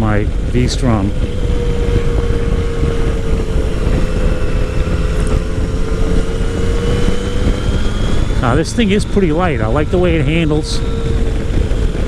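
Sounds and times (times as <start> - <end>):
motorcycle engine cruising: 0.0 - 12.0
wind rush on microphone: 0.0 - 12.0.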